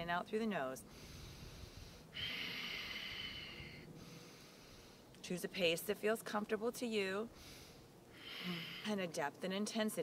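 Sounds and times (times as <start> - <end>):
person breathing through nose: 0.9 - 5.1, 7.3 - 8.9.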